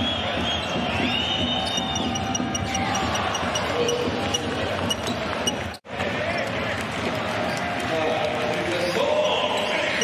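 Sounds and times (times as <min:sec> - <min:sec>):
arena noise with voices: 0:00.0 - 0:10.0.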